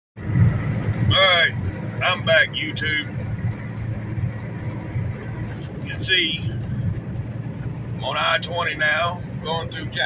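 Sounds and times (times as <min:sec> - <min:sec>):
road noise: 0:00.2 - 0:10.0
truck engine drone: 0:00.2 - 0:10.0
man speaking: 0:01.1 - 0:03.1, 0:05.8 - 0:06.6, 0:08.0 - 0:10.0.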